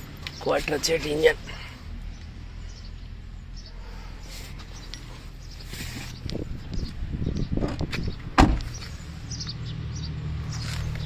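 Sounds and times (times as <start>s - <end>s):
car door slamming: 7.6s - 8.8s.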